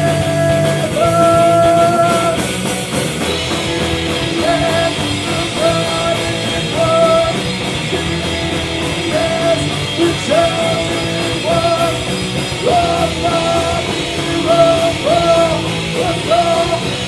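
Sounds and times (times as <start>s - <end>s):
shouted vocals: 0.0s - 2.5s
bass guitar: 0.0s - 17.0s
distorted electric guitar: 0.0s - 17.0s
drums with cymbal beat: 0.0s - 17.0s.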